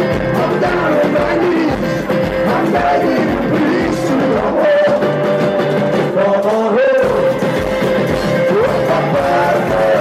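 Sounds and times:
voices singing along: 0.0s - 5.2s, 6.0s - 10.0s
acoustic guitar: 0.0s - 10.0s.

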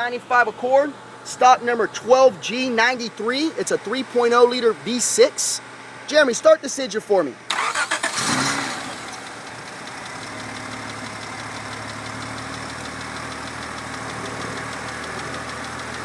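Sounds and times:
car engine idling: 7.5s - 16.0s.

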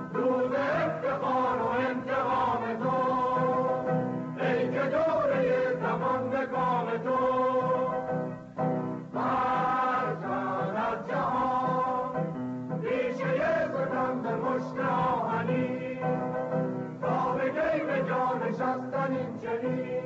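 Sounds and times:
choir singing an anthem: 0.0s - 8.1s, 9.1s - 16.4s, 17.0s - 20.0s.

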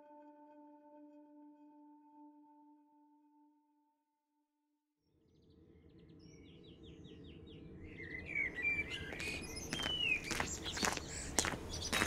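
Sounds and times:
small birds singing: 5.2s - 12.0s
footsteps on gravel: 9.0s - 12.0s.

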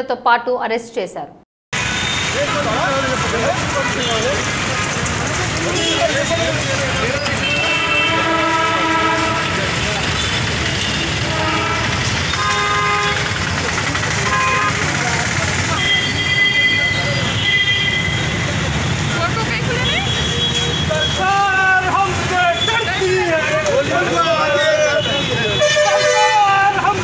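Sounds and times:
low traffic noise: 1.8s - 27.0s
vehicle horns honking: 1.8s - 27.0s
crowd shouting: 20.9s - 27.0s.

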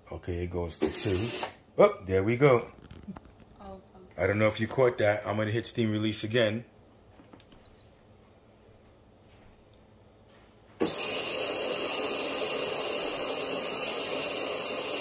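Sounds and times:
steam hissing from valve: 0.8s - 1.6s, 10.8s - 15.0s
short beep: 7.6s - 8.0s.

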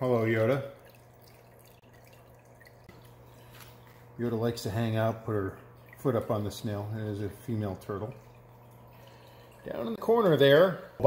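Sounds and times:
water dripping and trickling: 0.0s - 10.7s
low steady hum: 0.0s - 11.0s.

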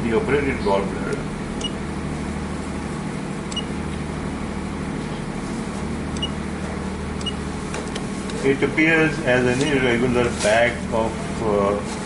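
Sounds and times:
room machinery humming: 0.0s - 12.0s.

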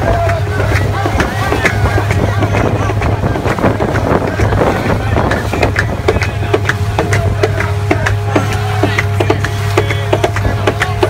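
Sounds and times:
boat motor droning: 0.0s - 11.0s
music with regular beat: 0.0s - 11.0s
voices: 0.0s - 11.0s
water rushing along hull: 0.0s - 11.0s
wind on microphone: 0.0s - 11.0s.

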